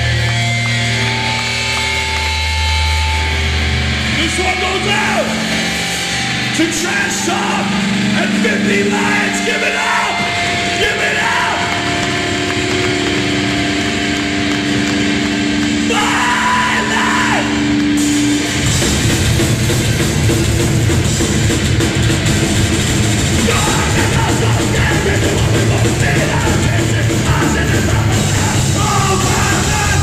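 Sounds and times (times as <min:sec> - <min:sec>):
punk band playing loud: 0:00.0 - 0:30.0.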